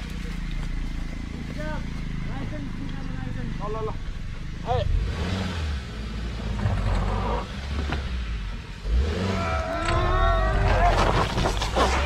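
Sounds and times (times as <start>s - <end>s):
car engine revving under load: 0.0s - 12.0s.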